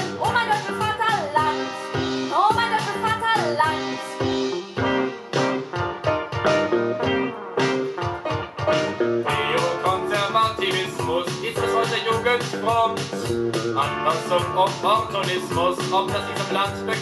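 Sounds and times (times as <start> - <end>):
plucked guitar music on a record: 0.0 - 17.0.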